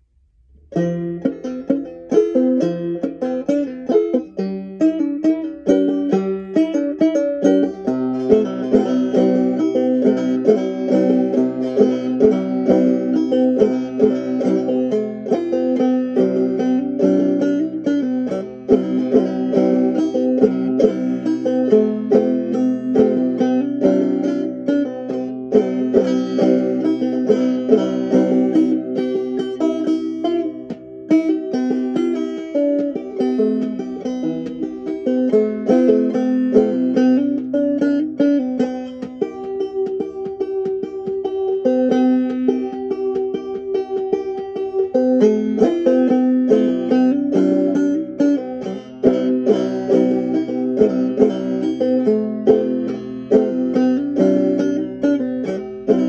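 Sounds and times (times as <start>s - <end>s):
banjo plucked melody: 0.0s - 56.0s.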